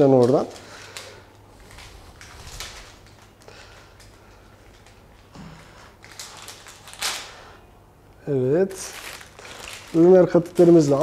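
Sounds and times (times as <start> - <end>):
plastic package rustling: 0.0 - 7.6, 8.7 - 11.0.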